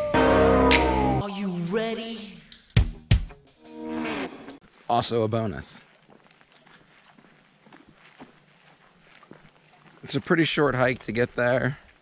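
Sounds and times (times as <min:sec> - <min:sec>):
footsteps on dirt trail: 0:04.6 - 0:12.0.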